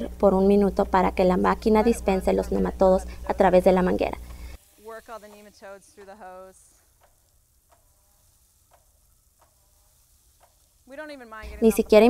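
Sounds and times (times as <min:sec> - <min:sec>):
woman's voice: 0:00.0 - 0:04.2, 0:04.8 - 0:06.8, 0:10.9 - 0:12.0
faint ticks: 0:07.0 - 0:08.0, 0:08.7 - 0:09.6.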